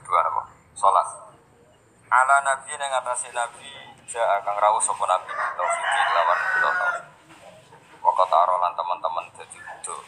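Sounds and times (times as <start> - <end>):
rooster crowing: 5.1 - 7.2.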